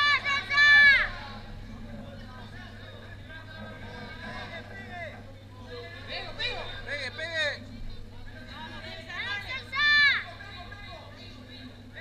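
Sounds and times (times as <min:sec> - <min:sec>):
spectators shouting: 0:00.0 - 0:01.3
crowd chatter: 0:00.0 - 0:12.0
low electrical hum: 0:00.0 - 0:12.0.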